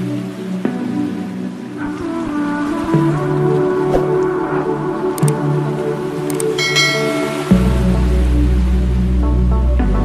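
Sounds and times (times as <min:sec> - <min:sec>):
background music held tones: 0:00.0 - 0:10.0
bright bell-like chime: 0:06.6 - 0:07.5.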